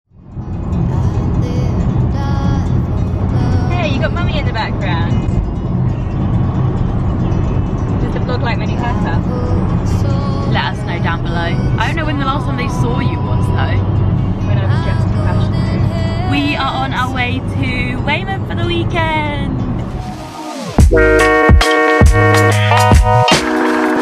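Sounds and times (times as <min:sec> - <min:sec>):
car road and engine rumble: 0:00.1 - 0:24.0
music: 0:00.2 - 0:17.6, 0:19.8 - 0:24.0
voices: 0:00.9 - 0:05.3, 0:07.9 - 0:20.8.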